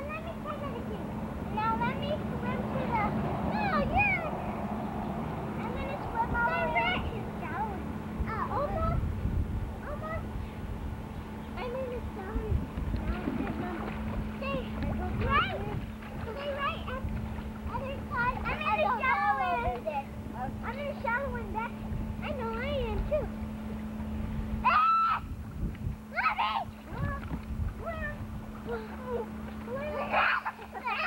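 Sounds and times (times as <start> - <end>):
pool-side background: 0.0 - 31.0
steady low hum: 0.0 - 31.0
child squealing: 24.6 - 25.3
children calling out and squealing: 24.6 - 25.3, 26.1 - 31.0.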